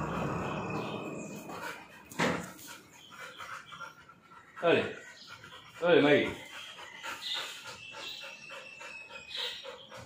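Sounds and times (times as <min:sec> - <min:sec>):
puppy panting: 0:01.2 - 0:10.0.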